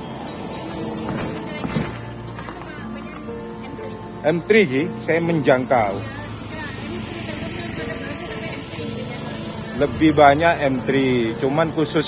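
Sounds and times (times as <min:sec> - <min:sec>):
car moving off: 0:00.0 - 0:12.0
motorcycle approaching: 0:00.0 - 0:12.0
tyres on paved road: 0:00.0 - 0:12.0
vehicle engines rumbling: 0:00.0 - 0:12.0.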